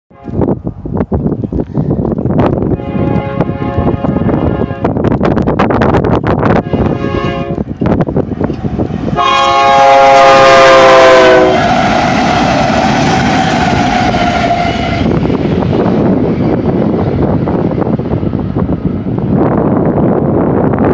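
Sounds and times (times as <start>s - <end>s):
train horn blasts: 0.1s - 0.5s, 2.7s - 5.0s, 6.6s - 7.6s, 9.1s - 15.2s
diesel locomotive engine rumble: 0.1s - 20.9s
train wheel noise: 0.1s - 20.9s.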